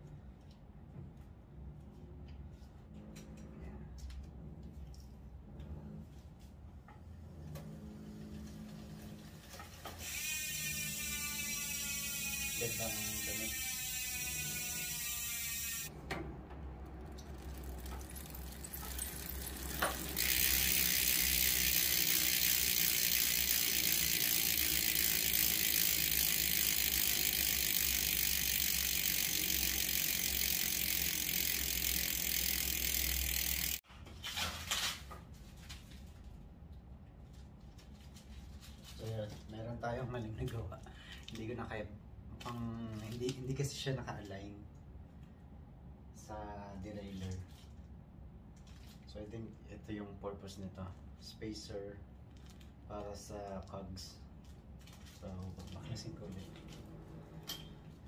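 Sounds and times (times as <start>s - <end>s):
freehub pawls buzzing: 7.6s - 16.0s, 16.6s - 33.8s
bicycle freehub clicking: 9.4s - 15.9s, 16.8s - 33.8s.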